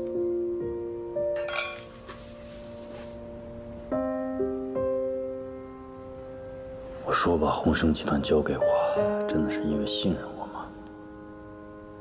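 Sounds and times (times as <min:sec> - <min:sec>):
soft piano music: 0:00.0 - 0:12.0
wine glasses clinking: 0:01.4 - 0:02.0.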